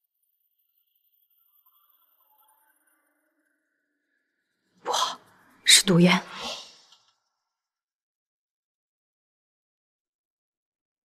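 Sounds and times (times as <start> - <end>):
woman's voice: 4.9 - 6.8.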